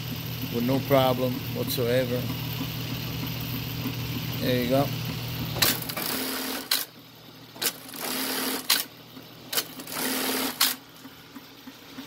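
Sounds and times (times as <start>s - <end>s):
industrial sewing machine stitching: 5.5s - 6.9s, 7.6s - 8.9s, 9.5s - 10.8s
sewing machine sharp clack: 5.6s - 6.9s, 7.6s - 8.9s, 9.5s - 10.8s.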